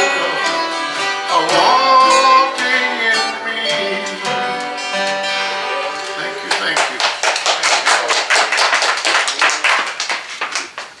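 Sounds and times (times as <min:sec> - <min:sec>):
audience clapping: 0:06.0 - 0:11.0.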